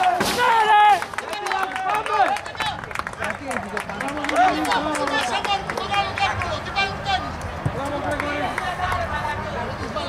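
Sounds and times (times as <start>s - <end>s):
chatter: 1.0s - 10.0s.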